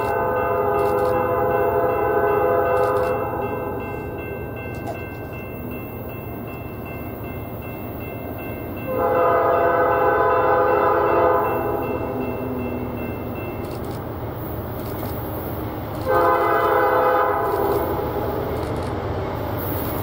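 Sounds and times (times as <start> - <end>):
train air horn blasts: 0.0 - 3.8, 8.9 - 12.8, 16.0 - 18.3
low train rumble: 0.0 - 20.0.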